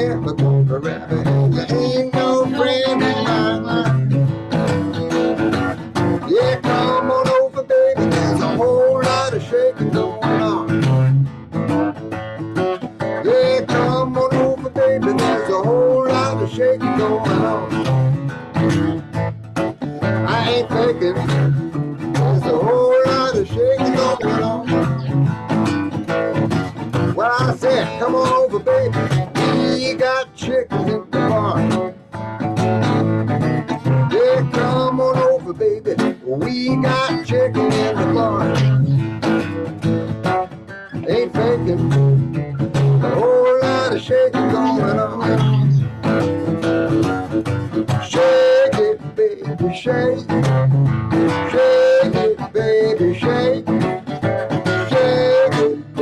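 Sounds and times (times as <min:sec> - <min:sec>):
bluesy guitar strumming and picking: 0:00.0 - 0:56.0.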